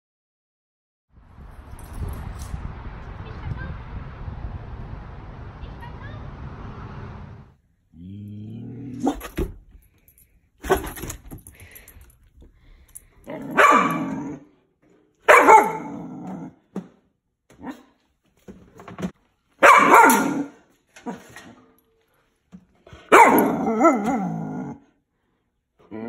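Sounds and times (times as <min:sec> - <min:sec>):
puppy barking: 0:13.3 - 0:14.4, 0:15.3 - 0:16.5, 0:19.6 - 0:21.2, 0:23.1 - 0:24.6.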